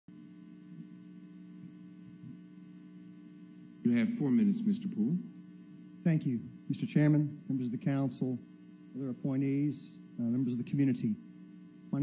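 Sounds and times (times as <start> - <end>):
electrical mains hum: 0.1 - 12.0.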